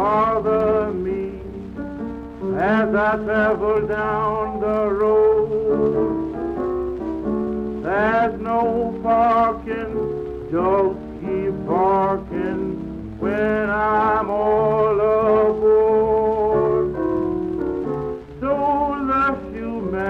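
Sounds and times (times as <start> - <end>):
record surface crackle: 0.0 - 20.0.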